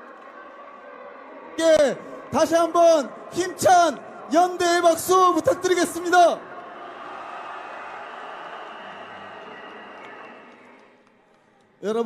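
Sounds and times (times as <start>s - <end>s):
crowd applauding: 5.3s - 11.8s.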